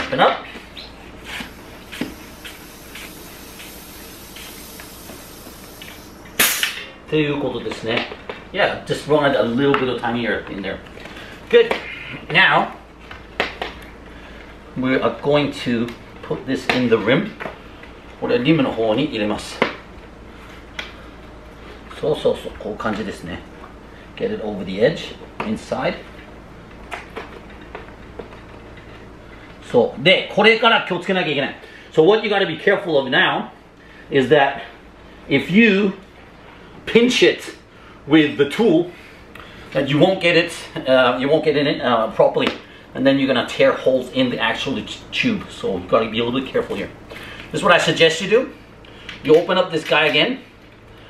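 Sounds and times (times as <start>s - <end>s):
bicycle tyre handling sounds: 0.2s - 6.9s
faint pump strokes: 0.5s - 6.3s
air hissing from pump: 0.7s - 6.9s.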